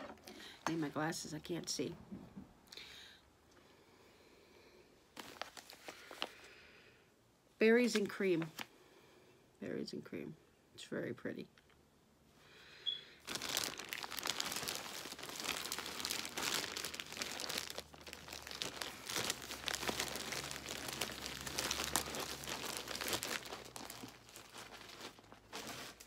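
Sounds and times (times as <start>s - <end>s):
plastic bag crinkling: 5.2s - 6.5s, 13.2s - 26.0s.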